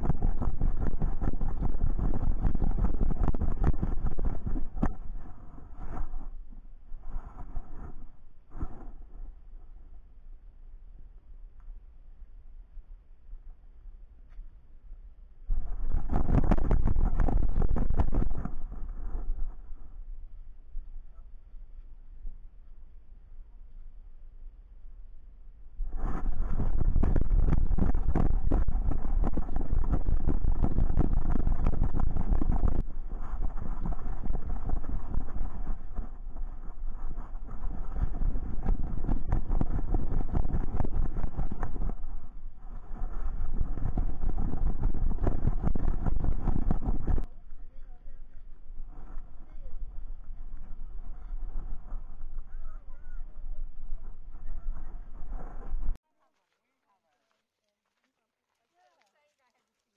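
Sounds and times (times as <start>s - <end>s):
wind buffeting microphone: 0.0s - 9.2s, 15.5s - 20.6s, 25.8s - 56.0s.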